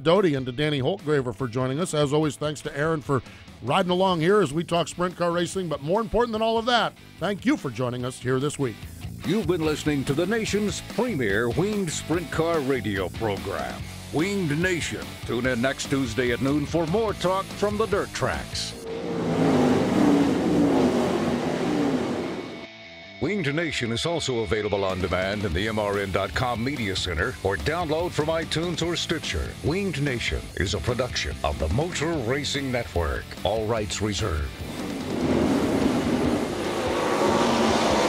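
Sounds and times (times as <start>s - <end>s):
race car engine passing: 17.3s - 22.7s, 34.5s - 38.0s.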